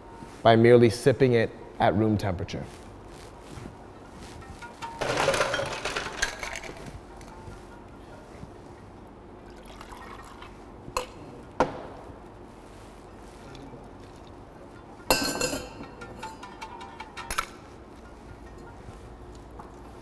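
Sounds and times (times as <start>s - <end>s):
metal shaker tins clinking: 4.0s - 8.5s, 13.3s - 19.8s
liquid pouring: 9.5s - 10.6s.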